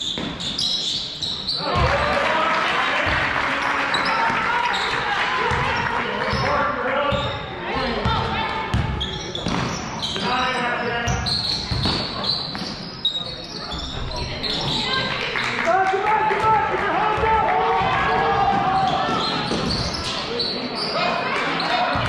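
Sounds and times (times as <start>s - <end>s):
people shouting in echoing gym: 1.4s - 2.5s, 15.7s - 22.0s.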